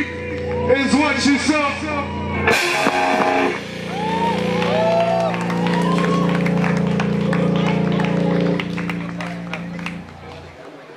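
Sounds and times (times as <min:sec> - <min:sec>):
electric guitar chord ringing: 0:02.1 - 0:10.2.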